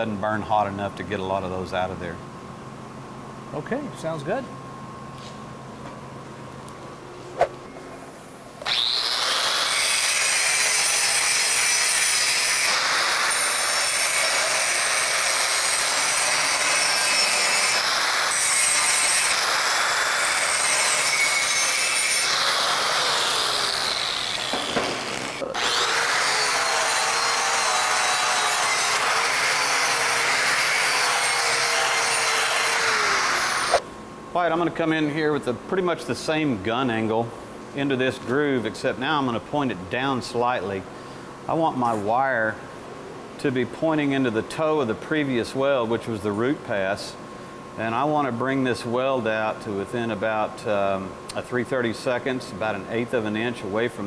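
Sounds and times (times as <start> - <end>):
angle grinder grinding steel: 8.6 - 33.8.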